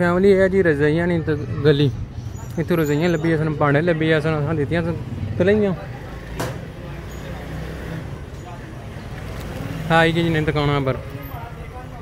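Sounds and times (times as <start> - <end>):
street background noise: 0.0 - 12.0.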